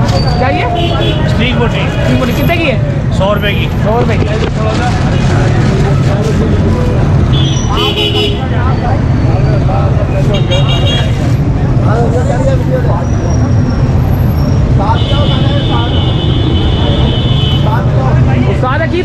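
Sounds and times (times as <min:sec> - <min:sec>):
vehicle engines rumbling: 0:00.0 - 0:19.0
car horns tooting: 0:00.1 - 0:02.5, 0:07.2 - 0:08.9, 0:10.2 - 0:11.3, 0:14.4 - 0:17.9.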